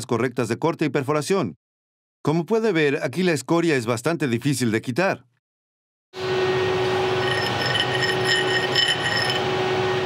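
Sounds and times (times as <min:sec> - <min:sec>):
steady shop hum: 0:06.2 - 0:10.0
steel scraping with metallic squeals: 0:07.0 - 0:10.0.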